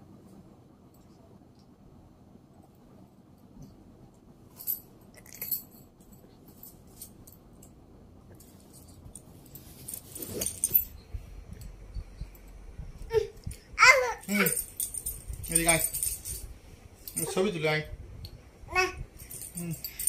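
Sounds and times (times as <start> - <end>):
rustling and knocks: 8.4 - 13.6
light metallic clinks: 14.2 - 17.6, 19.2 - 20.0.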